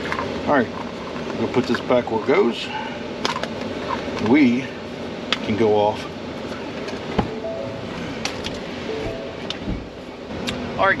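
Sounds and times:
door-open warning chime: 0:07.3 - 0:08.2, 0:08.9 - 0:09.8.

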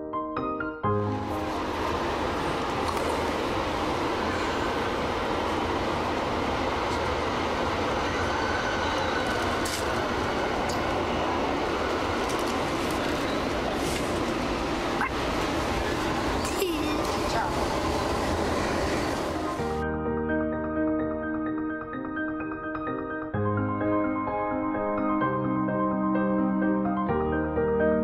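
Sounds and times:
train running rumble: 0:01.0 - 0:19.8.

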